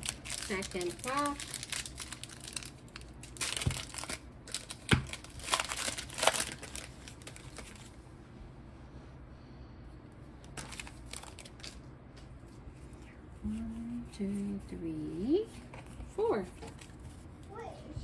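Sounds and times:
cards rustling: 0.0 - 7.9, 10.4 - 11.8, 15.6 - 17.4
foil wrapper crinkling and tearing: 0.0 - 7.9, 10.4 - 11.8.

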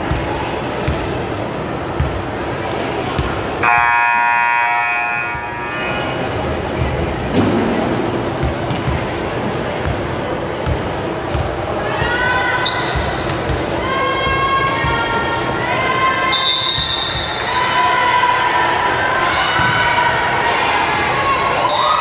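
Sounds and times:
echoing gymnasium chatter: 0.0 - 22.0.

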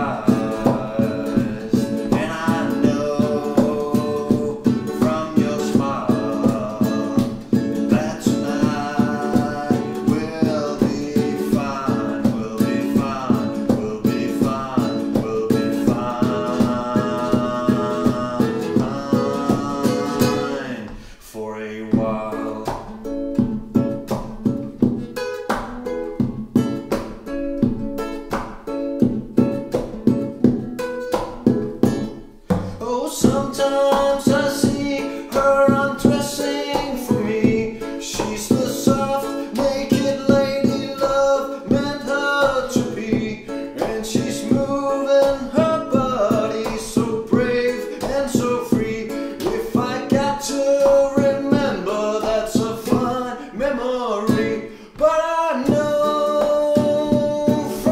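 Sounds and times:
person humming a melody: 0.0 - 20.8
classical guitars strumming: 0.0 - 57.9.

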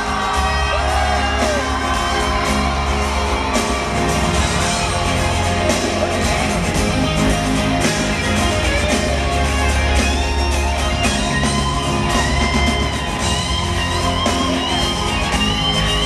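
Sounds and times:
live band playing: 0.0 - 16.0.

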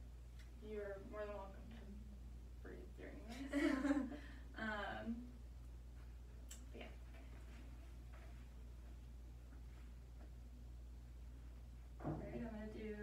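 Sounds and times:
steady low hum: 0.0 - 13.0
woman laughing: 3.3 - 4.3
faint clicks and rustles: 5.8 - 10.5.

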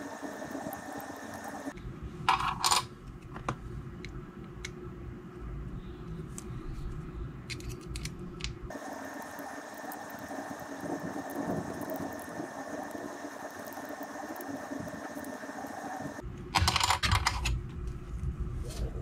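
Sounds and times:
plastic parts clicking and scraping: 7.5 - 8.6.

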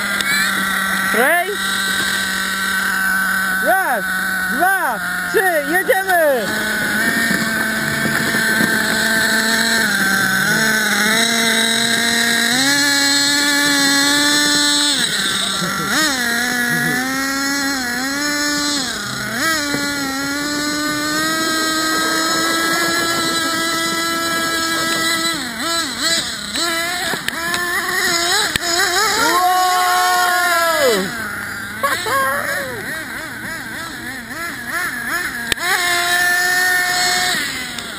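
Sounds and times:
small engine revving: 0.0 - 37.9.

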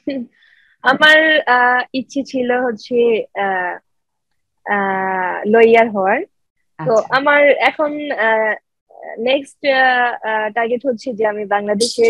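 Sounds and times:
speech: 0.0 - 0.3, 0.9 - 3.8, 4.7 - 12.0.

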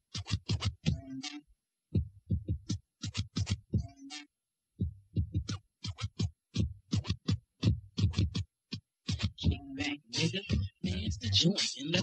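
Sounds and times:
deep kick drum thumps: 1.9 - 2.8, 4.8 - 5.6, 9.2 - 9.7.

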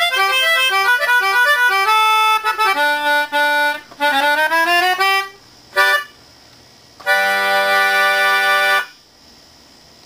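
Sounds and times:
free-reed keyboard chord: 0.0 - 6.2, 7.0 - 9.0
faint room noise: 0.0 - 10.0.

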